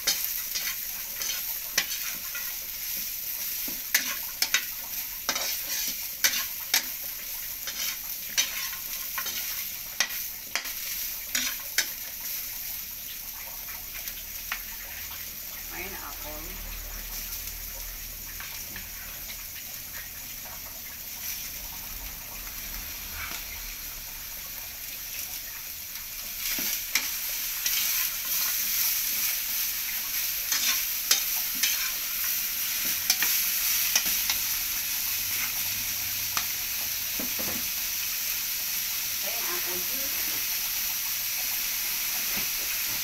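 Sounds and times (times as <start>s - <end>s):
metal spatula scraping a pan: 0.0s - 2.6s, 3.6s - 4.7s, 5.3s - 7.0s, 7.6s - 12.0s, 30.2s - 34.5s
carrots sizzling in a wok: 0.0s - 43.0s.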